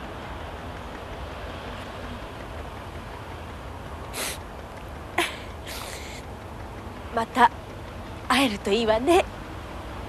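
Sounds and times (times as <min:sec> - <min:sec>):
even hiss: 0:04.1 - 0:04.4.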